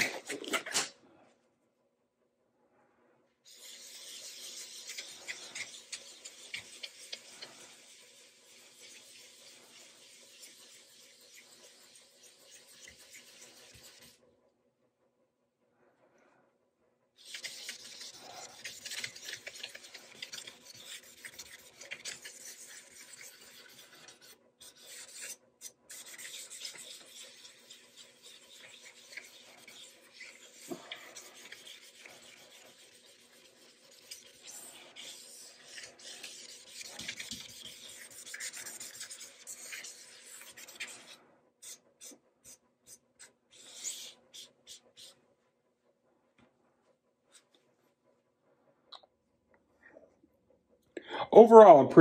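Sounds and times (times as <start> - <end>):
towel rubbing on wood: 3.5 - 14.2, 17.2 - 42.2.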